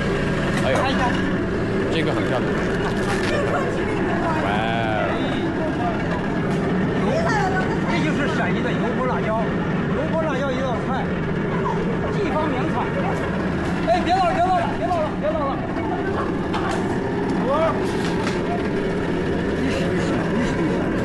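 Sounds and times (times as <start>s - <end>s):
low mechanical hum: 0.0s - 21.0s
people talking: 2.0s - 19.0s, 19.6s - 21.0s.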